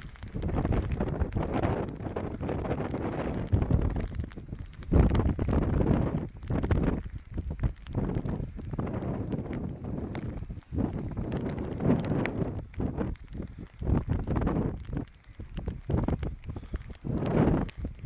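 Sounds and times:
strong wind buffeting microphone: 0:00.0 - 0:18.0.

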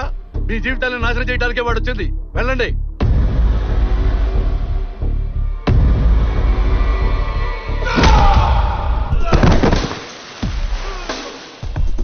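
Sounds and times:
heavy fight hits: 0:07.9 - 0:11.0
thud: 0:09.1 - 0:10.6.

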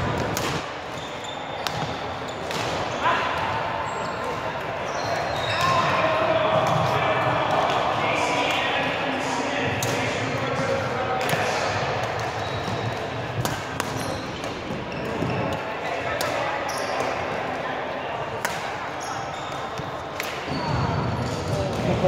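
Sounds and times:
rackets hitting shuttlecock: 0:00.0 - 0:00.8, 0:01.6 - 0:03.0, 0:11.2 - 0:16.4, 0:18.4 - 0:18.8
background chatter of voices: 0:00.0 - 0:22.0.

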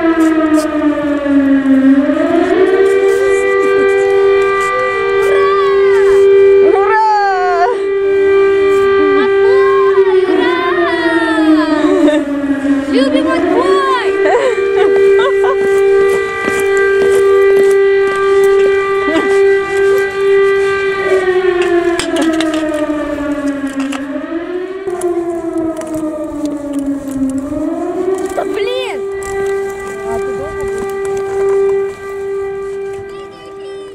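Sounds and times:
air-raid siren tone: 0:00.0 - 0:33.9.

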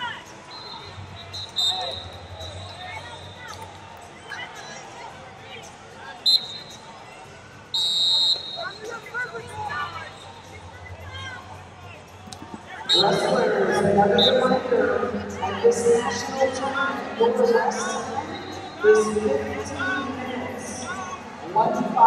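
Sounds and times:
voices chattering and shouting: 0:00.0 - 0:22.0
referee whistle blasts: 0:00.5 - 0:03.5, 0:06.2 - 0:06.8, 0:07.7 - 0:08.9.

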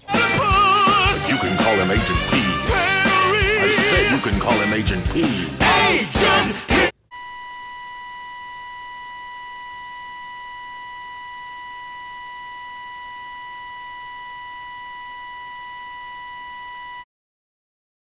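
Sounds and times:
steady electronic beep tone: 0:07.1 - 0:17.0.

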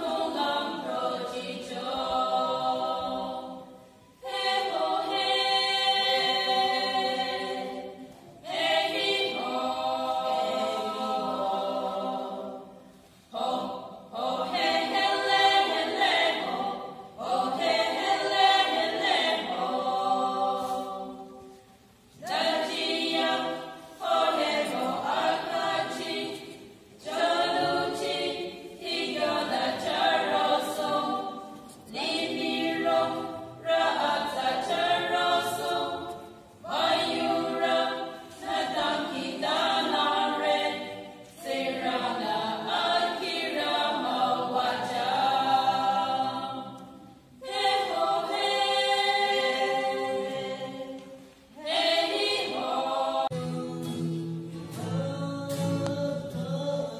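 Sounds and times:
women singing unaccompanied: 0:00.0 - 0:21.6, 0:22.2 - 0:53.4.

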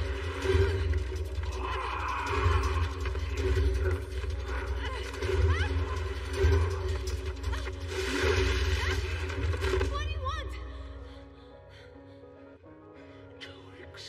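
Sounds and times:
dramatic music: 0:00.0 - 0:12.4.

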